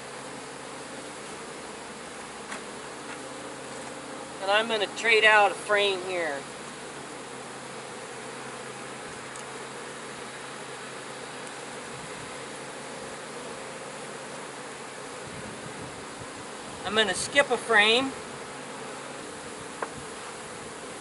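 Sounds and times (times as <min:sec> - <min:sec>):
bees buzzing: 0:00.0 - 0:21.0.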